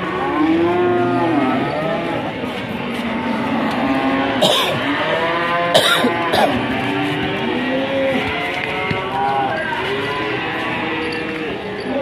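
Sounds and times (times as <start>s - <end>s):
cattle mooing: 0.0s - 9.6s.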